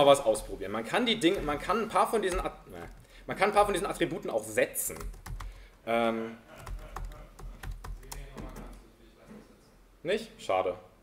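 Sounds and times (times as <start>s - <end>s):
typing on laptop keyboard: 4.9s - 5.7s, 6.5s - 8.8s.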